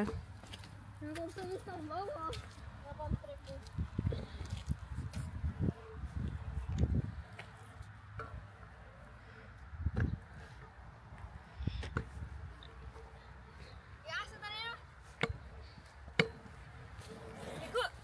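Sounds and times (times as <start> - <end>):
wind rumble on microphone: 2.8 - 7.4, 9.6 - 10.5.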